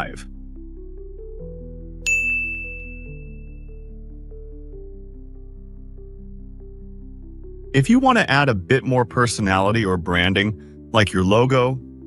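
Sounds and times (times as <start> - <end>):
soft ambient music of held chords: 0.0 - 12.0
bright high ding: 2.0 - 3.6.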